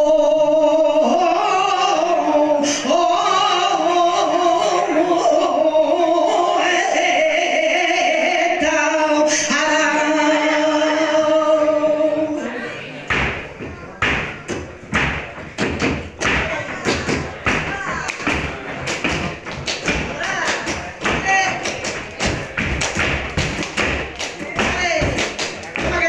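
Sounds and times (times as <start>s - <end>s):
flamenco footwork on stage floor: 13.1s - 26.0s.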